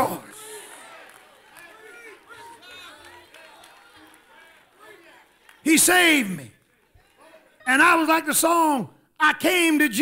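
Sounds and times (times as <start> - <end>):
congregation calling out responses: 0.0 - 9.8.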